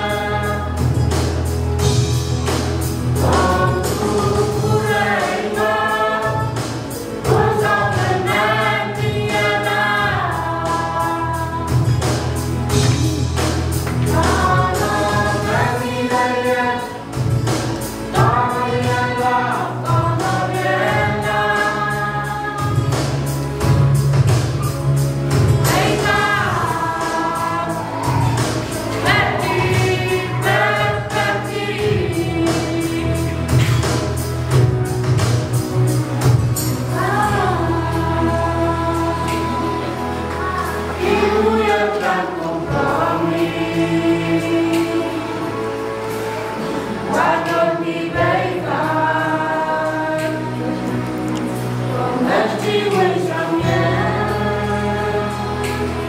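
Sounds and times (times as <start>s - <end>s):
group singing gospel song: 0.0s - 35.2s, 35.8s - 56.0s.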